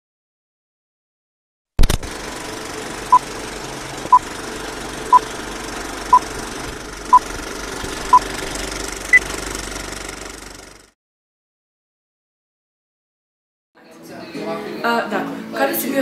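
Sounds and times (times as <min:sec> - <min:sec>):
film projector clatter: 0:01.8 - 0:10.9.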